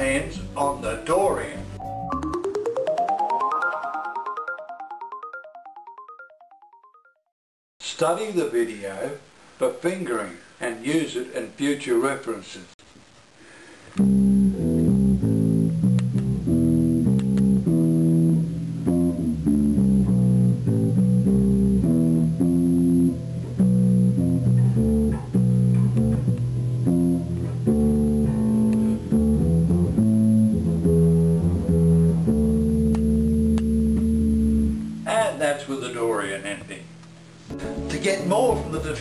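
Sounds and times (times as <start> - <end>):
electric bass guitar fingerstyle: 0.0 - 2.4, 14.0 - 35.4, 36.6 - 39.0.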